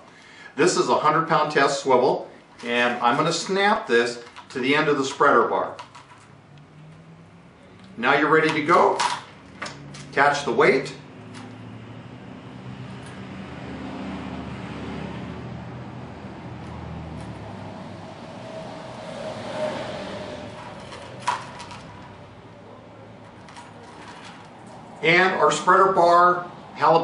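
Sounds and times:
low engine hum: 11.0 - 25.0.

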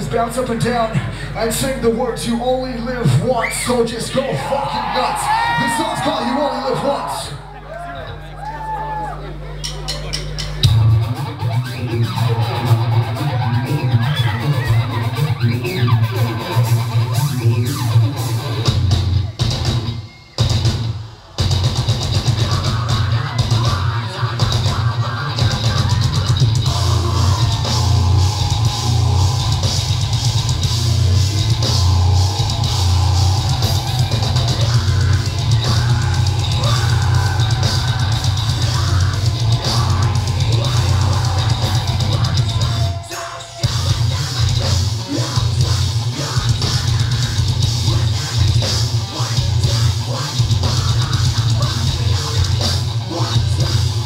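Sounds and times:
heavy metal band playing live: 0.0 - 7.5, 9.5 - 54.0.

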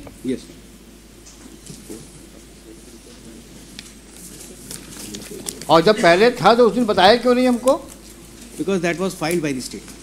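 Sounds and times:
murmur of voices: 1.5 - 10.0
man speaking loudly: 5.7 - 7.9.

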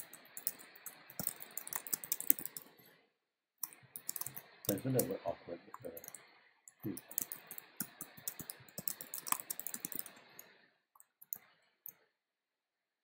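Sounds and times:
computer keyboard typing: 0.0 - 2.8, 3.6 - 5.1, 5.8 - 11.5.

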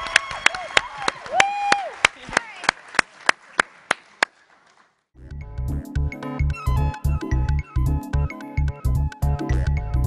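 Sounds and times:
electronic music with bass beat: 5.3 - 10.0.

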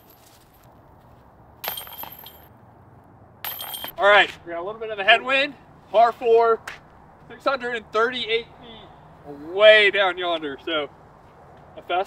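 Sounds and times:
metal chains jingling: 1.6 - 2.5, 3.4 - 4.0.

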